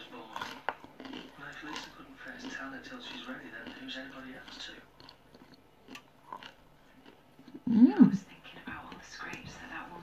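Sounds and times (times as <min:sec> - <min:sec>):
soft crunching chewing: 0:00.0 - 0:10.0.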